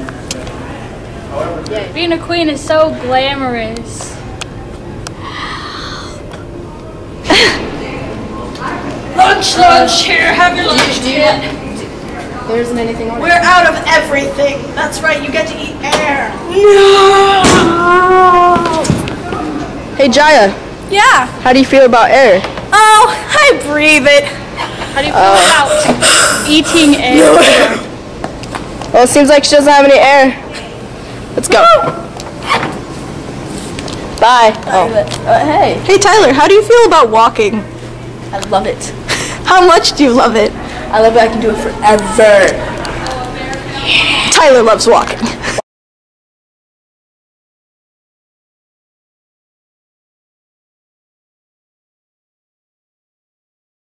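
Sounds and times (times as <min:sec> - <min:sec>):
steady background hum: 0:00.0 - 0:45.6
steady background noise: 0:00.0 - 0:45.6
person's loud vocal outburst: 0:25.4 - 0:27.9.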